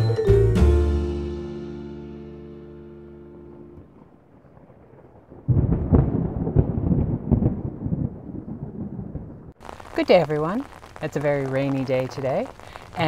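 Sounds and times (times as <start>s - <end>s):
mallet percussion music: 0.0s - 1.6s
thunder rumbling: 3.5s - 13.0s.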